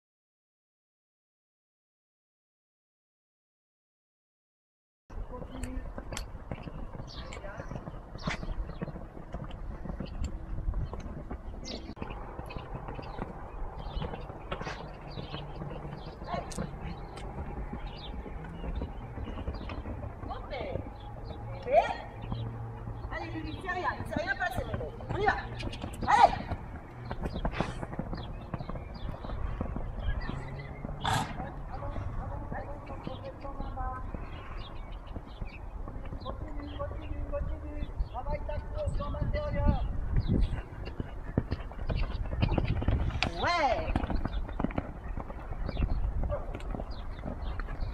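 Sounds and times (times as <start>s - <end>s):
hooves thudding on sand: 5.1s - 47.9s.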